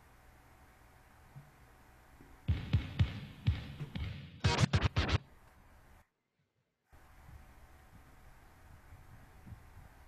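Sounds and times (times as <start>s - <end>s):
record scratching on turntable: 2.6s - 5.3s.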